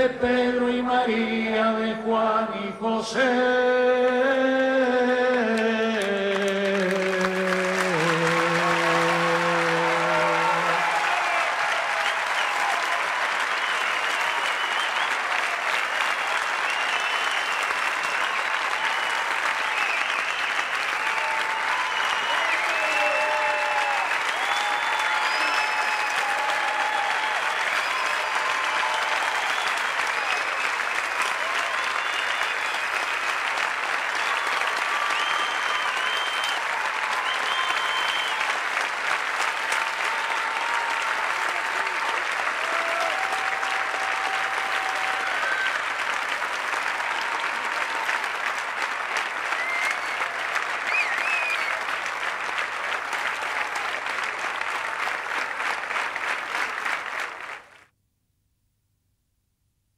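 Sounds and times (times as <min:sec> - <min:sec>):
audience applause: 0:04.0 - 0:57.9.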